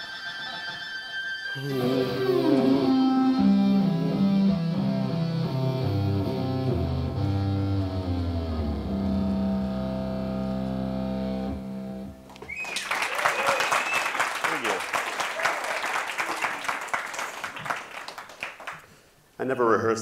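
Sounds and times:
distorted electric guitar lead: 0.0s - 12.3s
audience applause: 12.3s - 18.9s.

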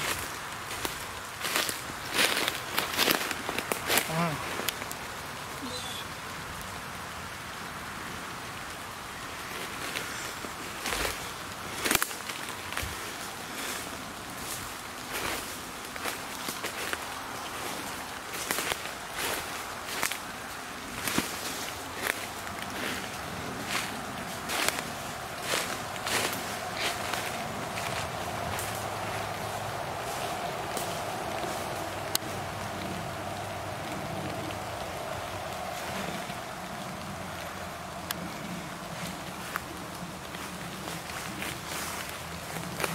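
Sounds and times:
footsteps crunching dry leaves: 0.0s - 6.1s, 8.5s - 42.9s.

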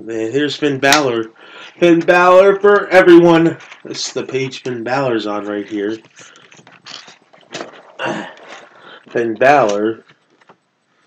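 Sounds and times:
glossy pages rustling: 1.8s - 10.6s.

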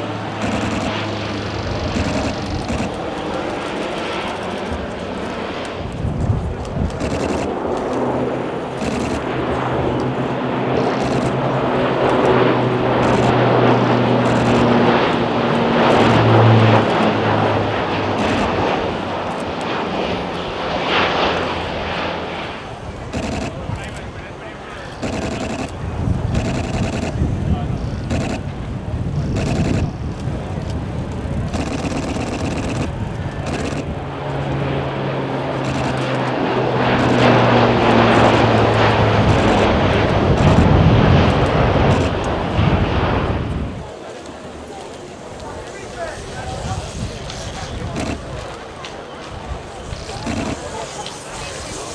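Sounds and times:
turboprop aircraft flyby drone: 0.0s - 51.9s.

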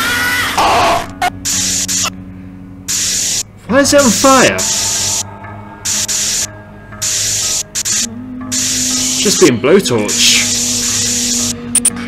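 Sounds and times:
low musical drone: 0.0s - 12.0s
blowtorch flame hissing: 5.9s - 8.9s.

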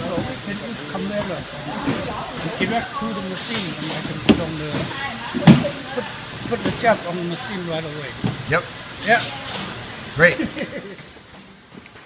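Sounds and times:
machinery hiss: 0.0s - 11.7s.

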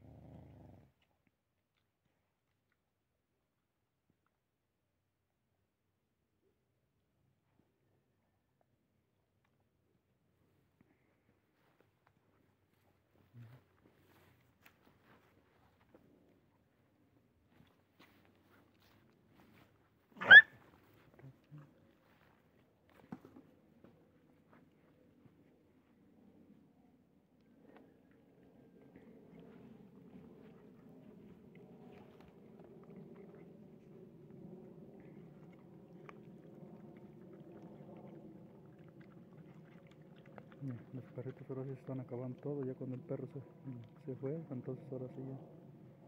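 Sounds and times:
dog yelping: 20.2s - 20.6s
dogs chewing and eating: 20.7s - 25.5s, 27.5s - 46.0s.

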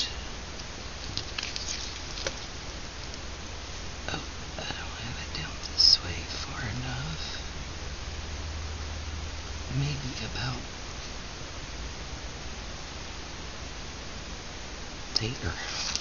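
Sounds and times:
paper rustling: 1.0s - 2.6s, 15.6s - 16.0s.

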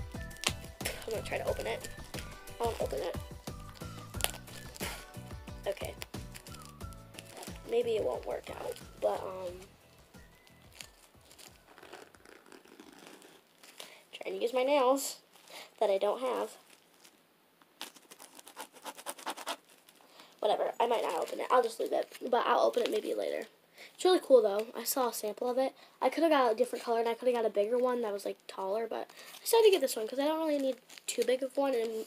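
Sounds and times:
background music: 0.0s - 11.8s
plastic wrap crinkling: 0.0s - 23.5s, 27.3s - 32.0s
fingernails scratching plastic wrap: 10.5s - 13.8s, 17.8s - 20.0s.

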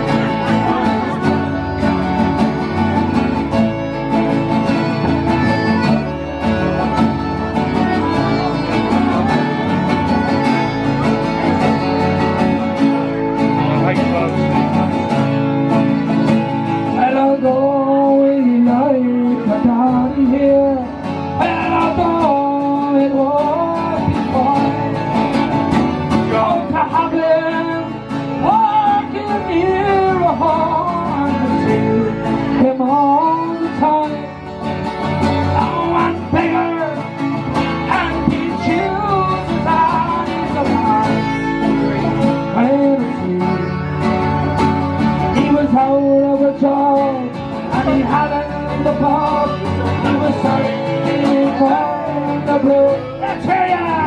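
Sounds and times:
button accordion: 0.0s - 17.4s, 18.9s - 54.0s
man singing: 0.0s - 54.0s
strummed acoustic guitars: 0.0s - 54.0s.

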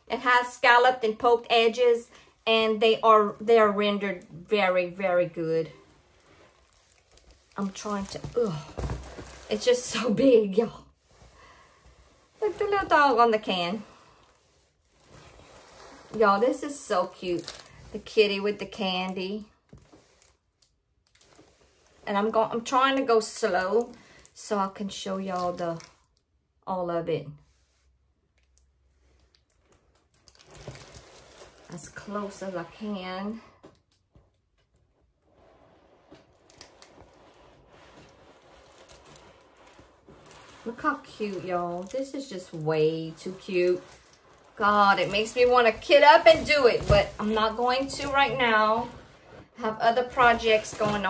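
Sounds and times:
faint canvas rustling: 1.8s - 24.6s, 29.0s - 51.0s.

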